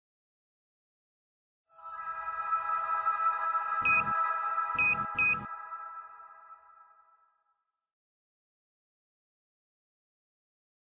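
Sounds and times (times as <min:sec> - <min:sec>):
held synthesized chord ringing: 0:01.7 - 0:07.5.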